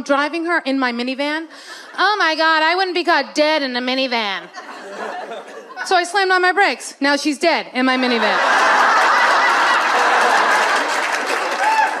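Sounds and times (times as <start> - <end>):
audience laughing and applauding: 8.0 - 12.0.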